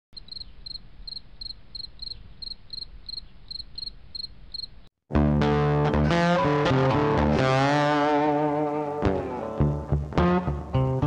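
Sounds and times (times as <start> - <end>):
insect chirping: 0.2 - 4.9
guitar music: 5.1 - 11.0.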